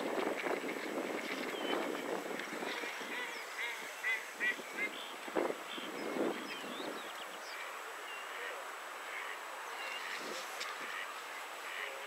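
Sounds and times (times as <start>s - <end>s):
waterfowl high calls: 1.7s - 5.8s, 7.5s - 12.0s.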